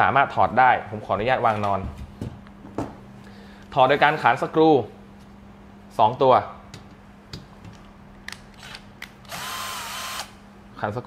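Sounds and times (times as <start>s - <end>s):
electric drill motor whine: 8.6s - 10.4s.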